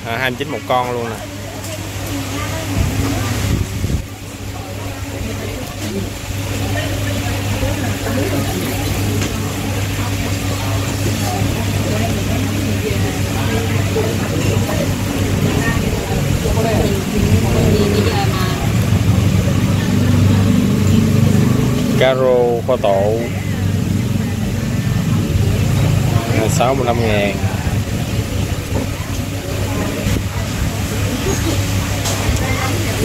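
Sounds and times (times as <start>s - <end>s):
indistinct diners' voices: 0.0s - 33.0s
steady low hum: 0.0s - 33.0s.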